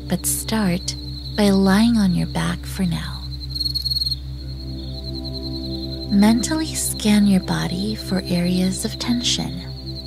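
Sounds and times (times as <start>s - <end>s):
ambient drone music: 0.0s - 10.0s
crickets chirping: 0.0s - 10.0s.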